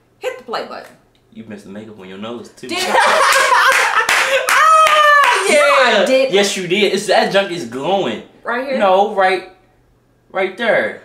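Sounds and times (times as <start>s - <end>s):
loud laughter: 2.8s - 5.5s
hands clapping: 3.2s - 5.6s.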